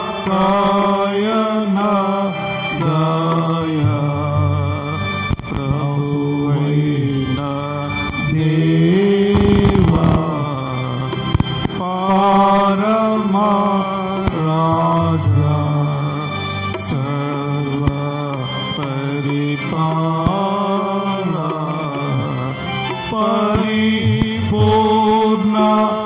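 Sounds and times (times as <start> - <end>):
chant-like devotional singing: 0.0 - 26.0
faint clicks: 5.3 - 5.7, 11.1 - 11.8.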